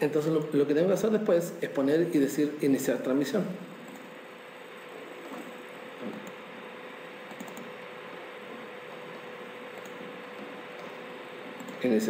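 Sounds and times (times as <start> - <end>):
faint steady hum: 0.0 - 12.0
microphone hiss: 0.0 - 12.0.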